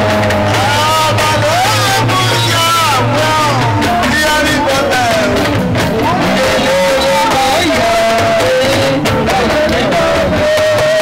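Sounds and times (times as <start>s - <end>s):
live band music: 0.0s - 11.0s
man singing into a microphone: 0.0s - 11.0s
steady bass: 0.0s - 11.0s.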